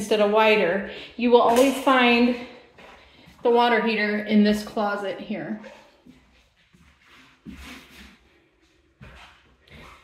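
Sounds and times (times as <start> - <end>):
soft rubbing and scuffing: 5.6 - 10.0.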